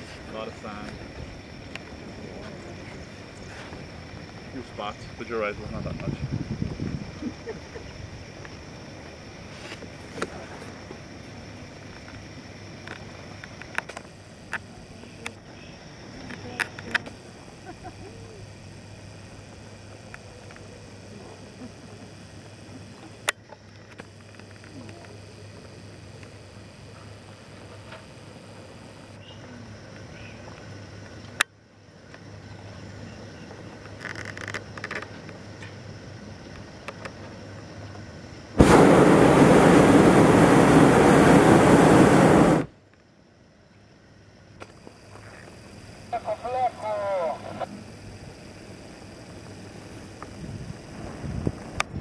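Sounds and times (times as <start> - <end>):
propane burner blast: 38.2 - 42.8, 44.6 - 52.0.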